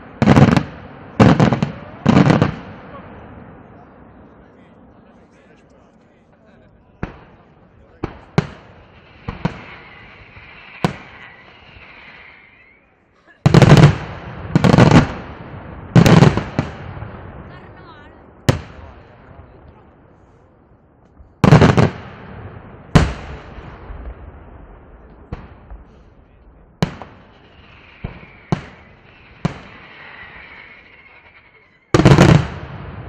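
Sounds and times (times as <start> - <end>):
sharp firework cracks: 7.0 - 12.9, 26.8 - 33.0
fireworks shells bursting: 8.2 - 12.9, 27.0 - 32.5.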